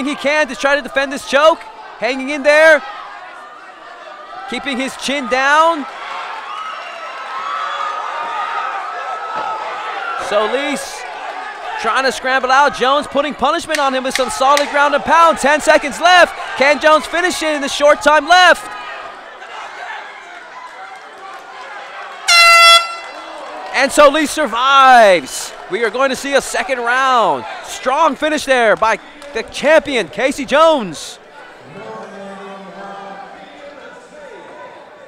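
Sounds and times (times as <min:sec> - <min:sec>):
crowd shouting and cheering: 0:00.0 - 0:35.0
loud flat horn blast: 0:22.3 - 0:23.2.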